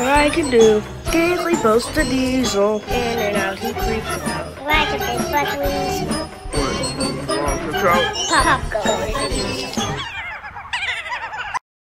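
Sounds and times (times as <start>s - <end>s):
cartoonish cackling laughter: 7.8s - 11.6s.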